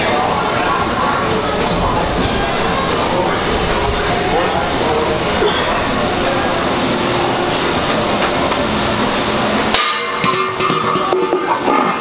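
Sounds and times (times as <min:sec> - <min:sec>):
music: 0:00.0 - 0:12.0
steady din: 0:00.6 - 0:11.4.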